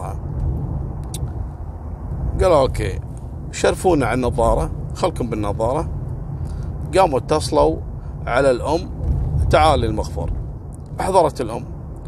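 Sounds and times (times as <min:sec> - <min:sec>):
car driving at highway speed: 0:00.0 - 0:12.0.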